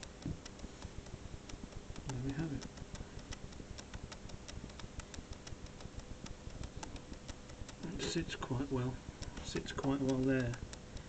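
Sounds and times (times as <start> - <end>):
faint steady hum: 0.0 - 11.0
light irregular clicks and ticks: 0.0 - 11.0.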